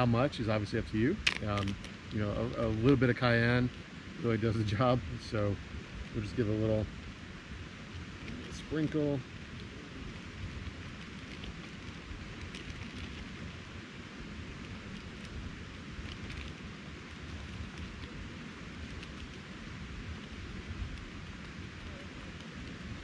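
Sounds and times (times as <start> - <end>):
camping stove burner hissing: 0.0 - 23.0
faint ticks: 14.5 - 23.0.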